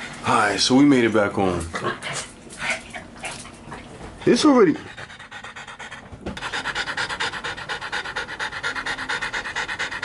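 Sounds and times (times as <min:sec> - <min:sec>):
dog panting quickly: 0:04.4 - 0:10.0.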